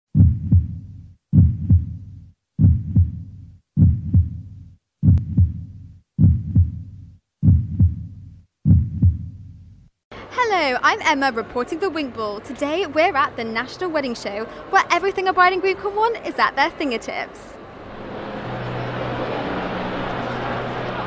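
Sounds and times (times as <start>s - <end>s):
heartbeat double thumps: 0.1s - 9.8s.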